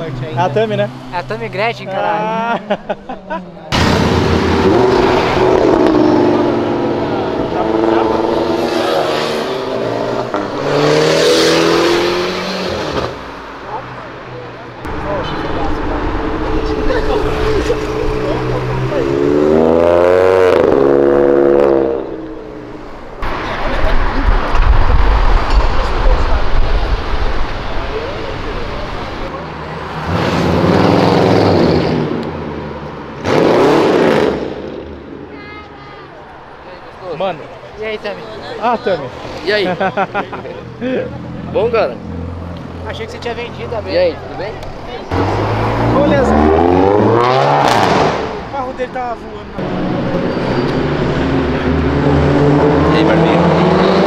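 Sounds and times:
cars accelerating past: 3.7s - 35.3s, 38.8s - 54.0s.

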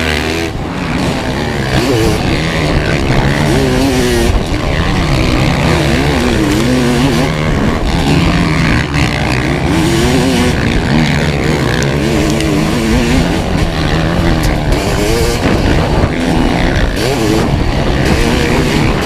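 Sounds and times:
motorcycle engine revving: 0.0s - 19.0s.

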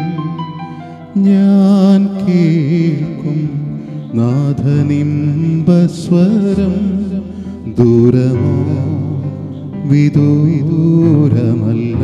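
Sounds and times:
electronic keyboard accompaniment: 0.0s - 12.0s
man singing into a microphone: 0.0s - 12.0s.

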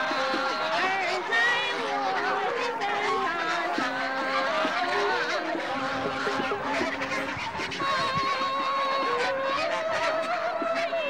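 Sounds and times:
geese honking: 0.0s - 11.0s.

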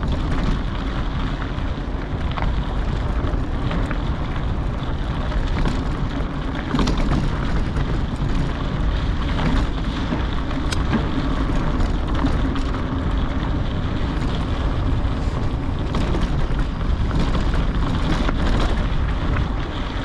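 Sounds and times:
crunch of trail surface: 0.0s - 20.0s
wind buffeting microphone: 0.0s - 20.0s
sharp clicks and knocks: 9.4s - 12.9s.

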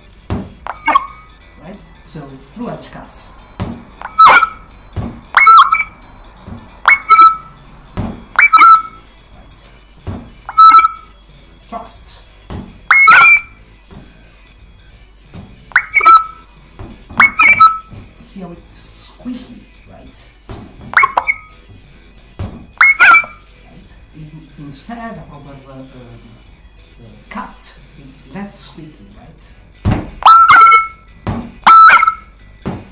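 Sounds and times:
squeaky two-tone beep: 0.7s - 1.4s, 3.4s - 6.2s, 6.8s - 7.6s, 8.3s - 9.1s, 10.5s - 11.2s, 12.9s - 13.6s, 15.7s - 16.5s, 17.2s - 17.9s, 21.0s - 21.6s, 22.8s - 23.4s, 30.2s - 32.4s.

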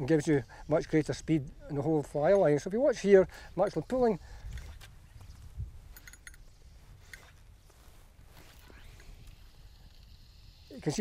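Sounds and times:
wind on microphone: 3.8s - 10.7s.

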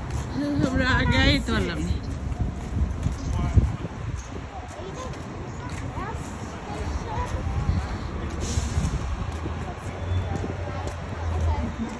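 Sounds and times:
street traffic rumble: 0.0s - 11.9s.

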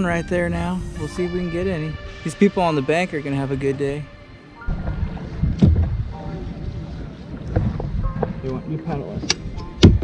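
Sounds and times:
wind rumble on microphone: 4.7s - 10.0s.

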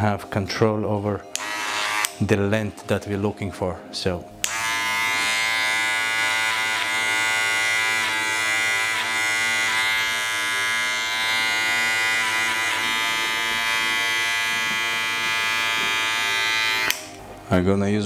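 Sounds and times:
clipper blade crackling in hair: 1.3s - 2.2s
electric hair clipper buzzing: 1.3s - 2.2s, 4.4s - 17.2s.

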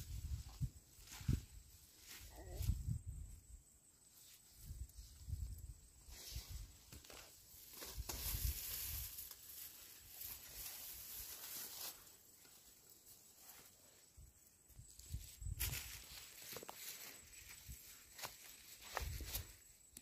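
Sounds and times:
rustling of leafy vines and soil: 0.0s - 20.0s.

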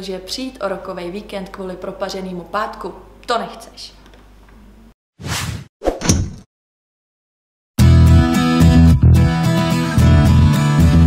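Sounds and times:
whoosh sound effects: 5.2s - 6.0s.

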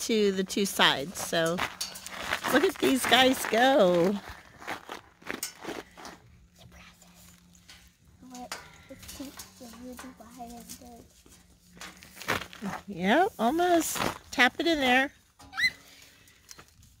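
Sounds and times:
steady low hum: 0.0s - 17.0s.

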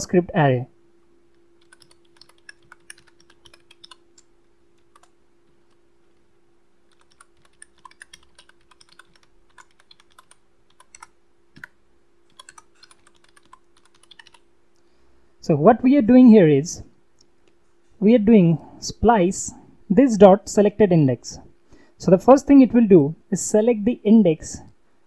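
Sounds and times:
low steady hum: 0.0s - 25.0s
computer keyboard typing: 1.6s - 5.8s, 6.9s - 14.4s.

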